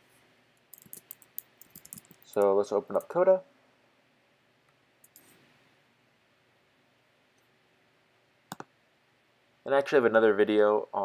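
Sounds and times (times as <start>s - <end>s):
computer mouse clicks: 0.7s - 2.4s, 5.0s - 5.3s, 8.5s - 8.7s.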